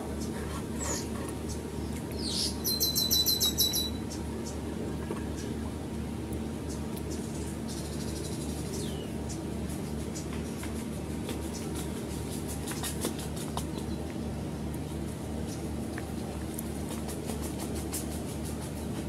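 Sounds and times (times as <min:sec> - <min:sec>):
steady low hum: 0:00.0 - 0:19.0
birds chirping: 0:00.2 - 0:05.6, 0:06.6 - 0:10.6
bird trill: 0:02.2 - 0:04.6.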